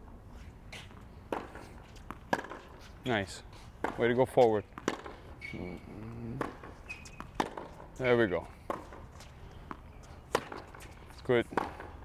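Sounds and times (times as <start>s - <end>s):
racket hitting tennis ball: 0.8s - 3.1s, 3.7s - 5.2s, 6.3s - 12.0s
shoe squeaks: 5.3s - 7.4s.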